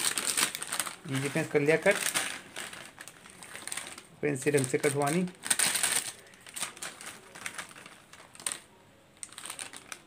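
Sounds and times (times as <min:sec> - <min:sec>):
foil packet crinkling: 0:00.0 - 0:10.0.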